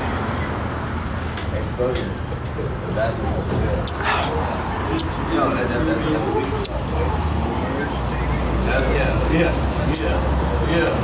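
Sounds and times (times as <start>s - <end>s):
indistinct talking: 1.5s - 11.0s.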